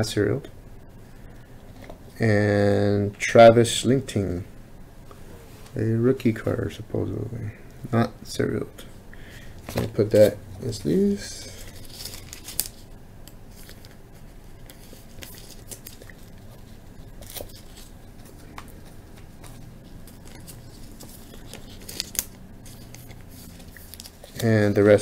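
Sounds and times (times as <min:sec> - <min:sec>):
faint room hum: 0:00.0 - 0:25.0
cards sliding into plastic sleeves: 0:14.6 - 0:25.0.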